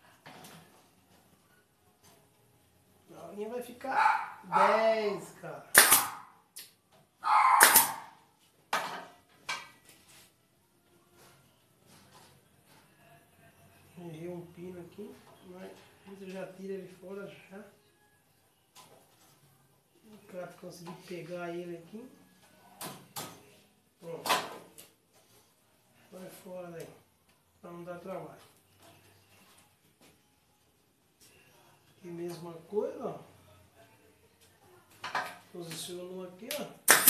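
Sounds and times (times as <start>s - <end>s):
nail gun shot: 5.7s - 6.2s, 7.6s - 8.0s.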